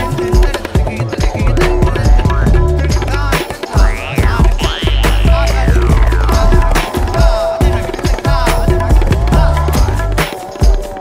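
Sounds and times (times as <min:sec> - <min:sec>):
tabla strokes: 0:00.0 - 0:11.0
heavy bass line: 0:00.8 - 0:10.2
strong hit: 0:03.8 - 0:08.8.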